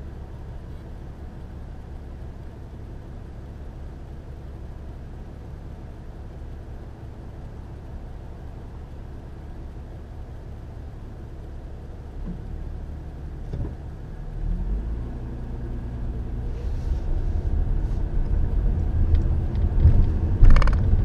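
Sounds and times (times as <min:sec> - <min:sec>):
car engine and road rumble: 0:00.0 - 0:21.0
sharp clatter: 0:19.7 - 0:21.0.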